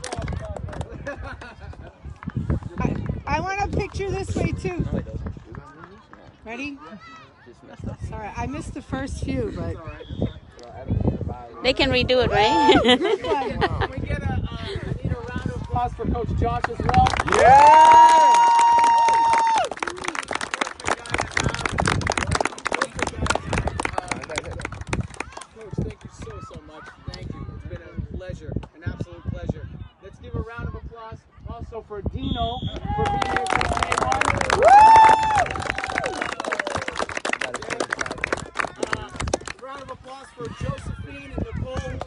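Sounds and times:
people clapping: 0.0 - 4.0, 16.5 - 27.2, 32.8 - 40.9
high woo cheer: 17.3 - 19.7, 34.4 - 36.7.

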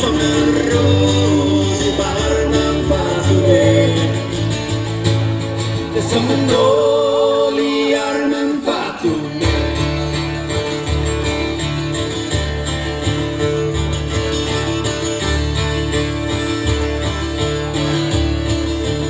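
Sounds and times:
bass line: 0.0 - 8.3, 9.0 - 19.0
strummed acoustic guitars: 0.0 - 19.0.

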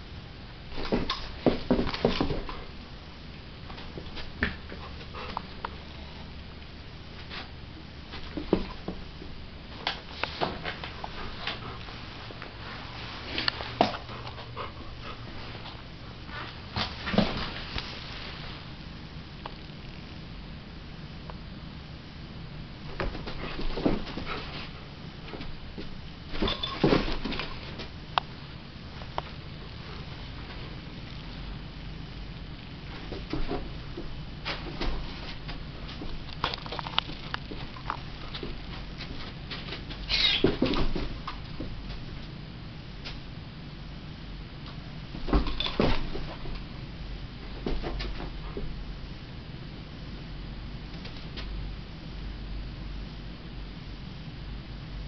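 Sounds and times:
faint squeaky sounds: 40.1 - 40.7.

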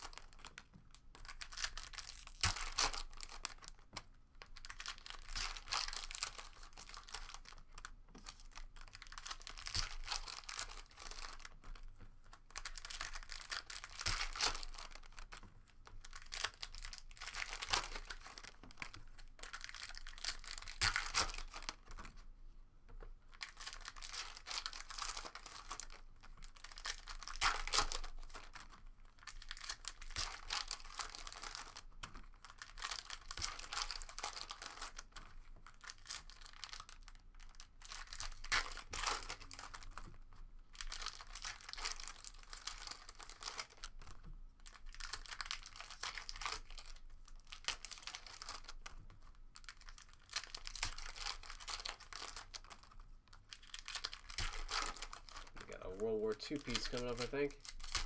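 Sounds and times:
foil wrappers tearing and crinkling: 4.6 - 11.5, 12.5 - 15.4, 16.1 - 21.8, 23.4 - 40.0, 40.7 - 48.9, 49.6 - 58.0
cards being handled: 53.6 - 58.0.

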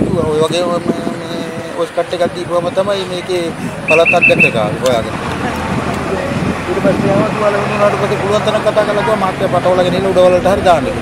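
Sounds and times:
man talking: 0.0 - 5.2, 6.6 - 11.0.

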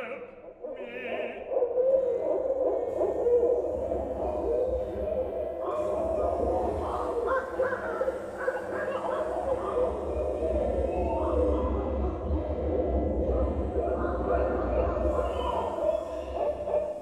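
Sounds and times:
owl hooting through loudspeakers: 0.0 - 17.0.

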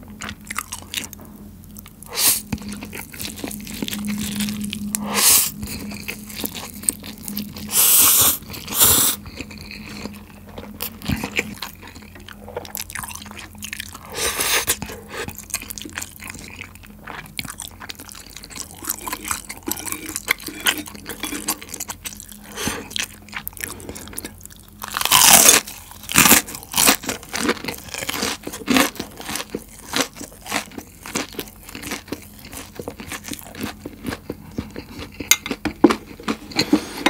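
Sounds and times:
chewing crispy fried chicken: 0.0 - 37.0.

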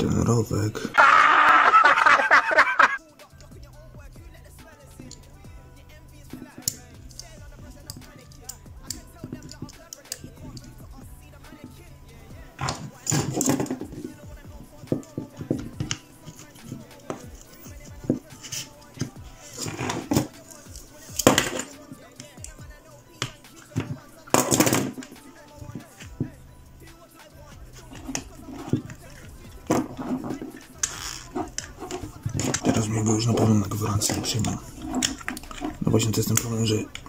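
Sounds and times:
background music: 0.0 - 37.0
scraping and rustling: 12.5 - 22.4, 27.7 - 37.0.

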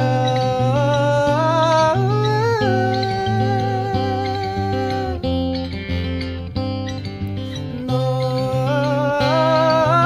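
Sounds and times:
man humming a melody: 0.0 - 6.2, 7.2 - 10.0
acoustic guitar: 0.0 - 10.0.

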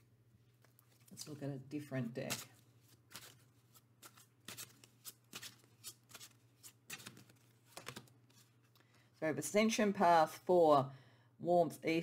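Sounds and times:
cards being shuffled: 2.2 - 9.0.

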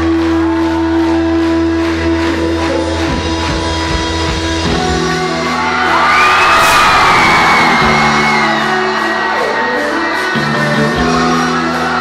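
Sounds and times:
live pop-rock band playing: 0.0 - 12.0
crowd cheering and screaming: 5.1 - 12.0.

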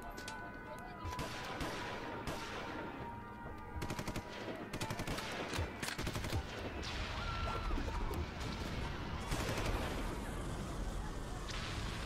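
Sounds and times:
gunshots: 1.1 - 2.9, 3.8 - 10.3.

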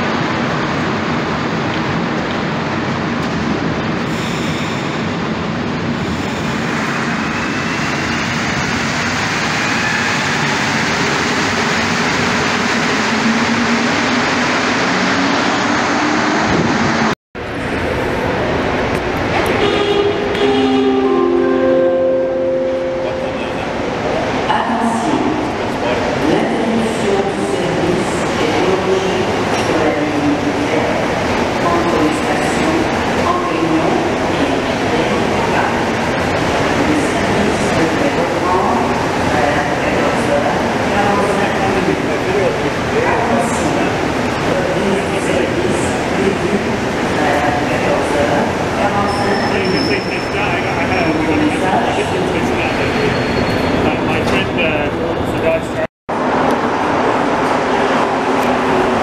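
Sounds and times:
metro train pulling in: 0.0 - 59.0
voices echoing in station: 0.0 - 59.0
faint high whine from train: 17.4 - 26.0.

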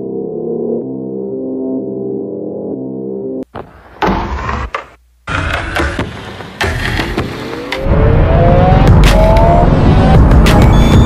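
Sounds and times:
intro music: 5.2 - 11.0
motorcycle engine accelerating: 7.5 - 11.0.

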